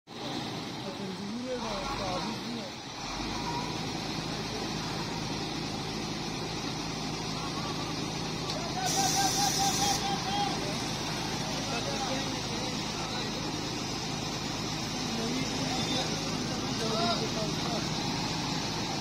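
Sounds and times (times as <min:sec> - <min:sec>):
bus engine low hum: 0:00.1 - 0:19.0
sharp hiss of air: 0:08.8 - 0:10.2.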